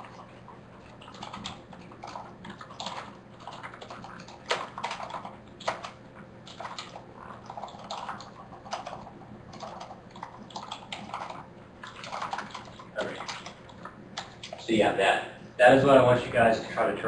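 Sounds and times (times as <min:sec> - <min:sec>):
typing on computer keyboard: 0:00.0 - 0:14.7.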